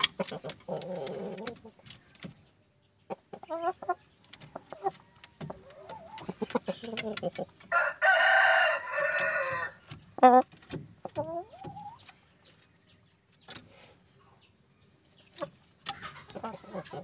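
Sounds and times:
chickens clucking: 0.0 - 17.0
rooster crowing: 7.7 - 9.8.

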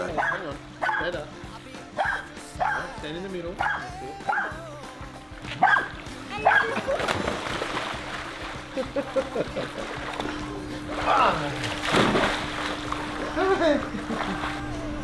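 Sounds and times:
background music: 0.0 - 15.0
dog barking sharply: 0.2 - 1.1, 2.0 - 2.9, 3.6 - 4.5, 5.6 - 6.8
water splashing: 5.3 - 15.0.

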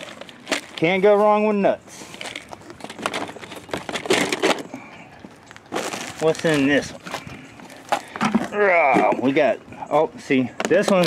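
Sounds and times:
metal cans clattering: 0.0 - 1.0, 2.1 - 4.8, 5.7 - 9.5.

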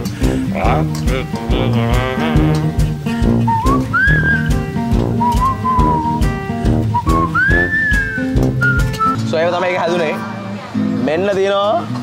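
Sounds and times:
upbeat music with bass: 0.0 - 11.2
whistled melody: 3.3 - 9.2.

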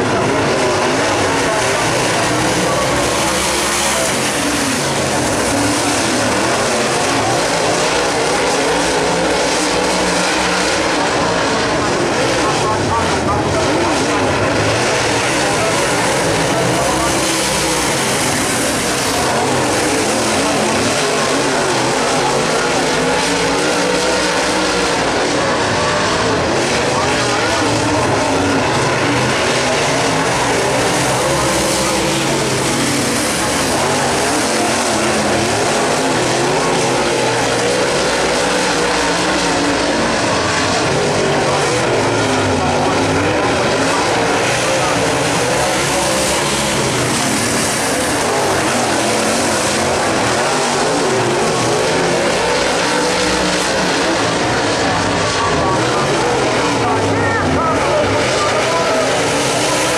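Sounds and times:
race car engines roaring: 0.0 - 59.9.

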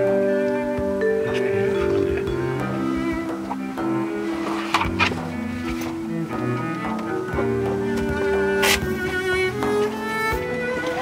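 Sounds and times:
bowed string music: 0.0 - 11.0.

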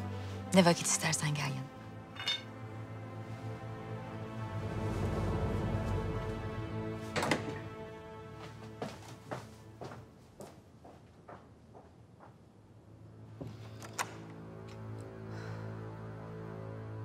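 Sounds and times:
low background music: 0.0 - 10.8, 12.4 - 17.0.

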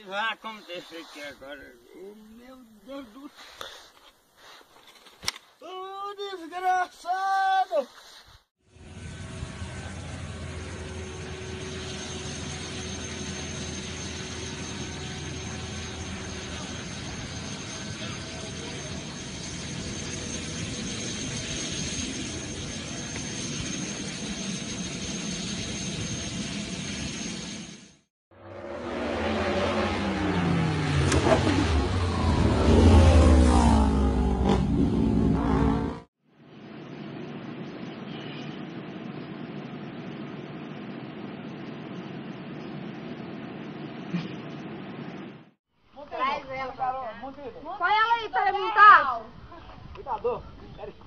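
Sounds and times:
jet engine roar with high whine: 8.8 - 28.1
motorcycles passing at speed: 28.4 - 36.1.

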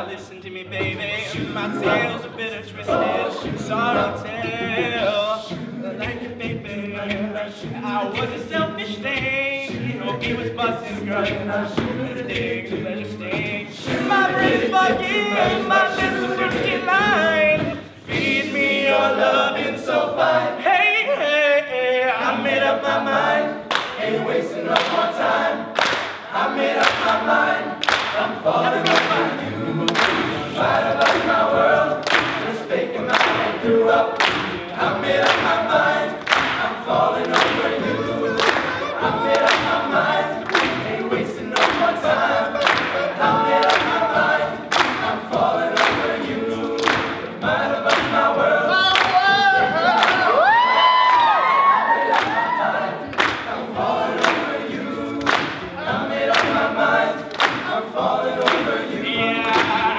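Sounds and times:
male a cappella group singing: 0.0 - 59.9.

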